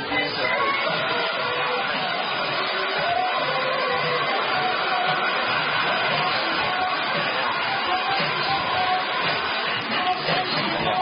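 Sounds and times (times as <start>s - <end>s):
faint music: 0.0s - 11.0s
hair dryer blowing: 0.0s - 11.0s.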